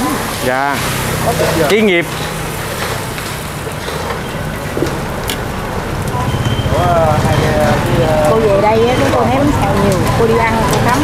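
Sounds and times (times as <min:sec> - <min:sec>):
batter sizzling in pans: 0:00.0 - 0:11.0.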